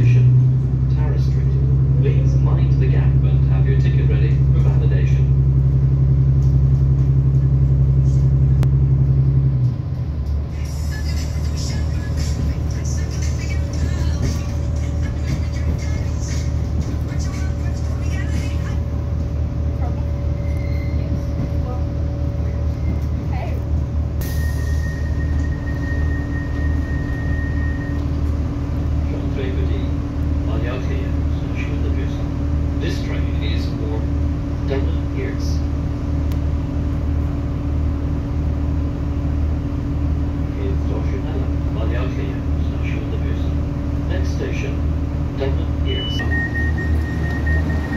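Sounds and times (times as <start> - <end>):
diesel engine droning: 0.0 - 47.9
wheels rumbling on track: 0.0 - 47.9.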